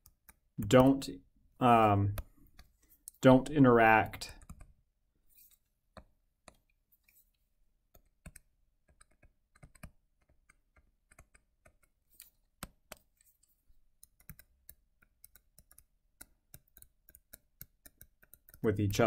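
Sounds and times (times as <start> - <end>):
stylus tapping on tablet screen: 2.1 - 3.1, 5.9 - 6.8, 7.8 - 19.0.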